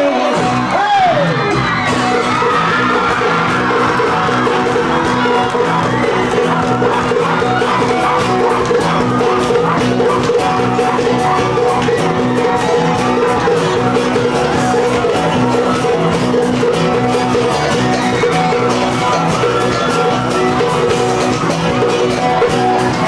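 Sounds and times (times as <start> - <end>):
crowd whooping and yelling: 0.0 - 23.0
live band playing: 0.0 - 23.0
log drum rhythm: 1.4 - 23.0.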